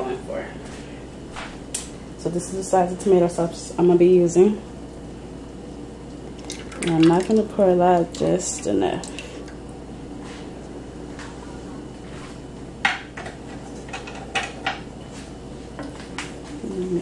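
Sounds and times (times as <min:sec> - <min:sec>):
low background hum: 0:00.0 - 0:17.0
kitchenware clinking: 0:12.9 - 0:14.8.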